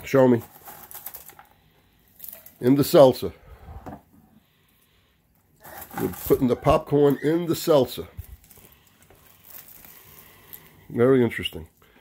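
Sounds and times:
popcorn picked from plastic tub: 5.6s - 11.7s.

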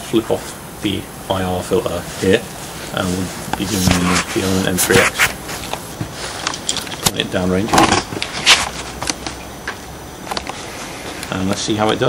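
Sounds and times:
rifle handling rustle: 2.8s - 9.4s.

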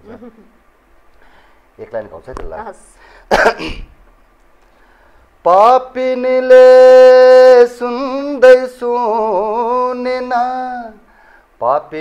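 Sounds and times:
man speaking: 1.8s - 2.9s
man clearing throat: 3.3s - 4.0s.

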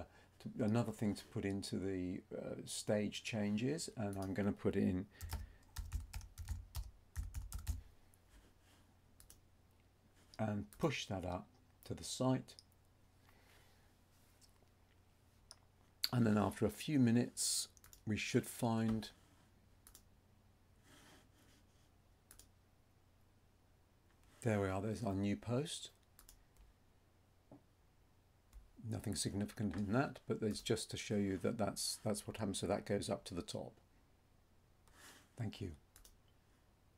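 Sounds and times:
typing on a computer keyboard: 5.2s - 7.8s
computer mouse clicks: 9.2s - 9.4s, 19.8s - 20.1s, 22.3s - 22.5s, 26.0s - 26.7s, 35.9s - 36.2s.

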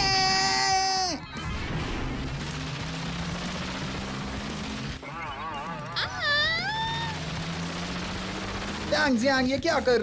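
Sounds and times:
cartoon background music: 3.3s - 8.4s.

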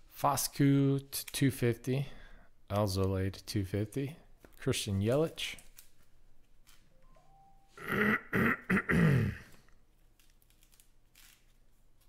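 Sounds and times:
man clearing throat: 7.8s - 9.6s.

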